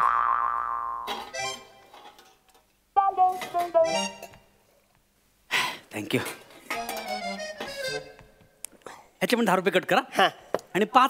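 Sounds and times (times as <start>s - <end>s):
rising comic tone: 3.0s - 4.2s.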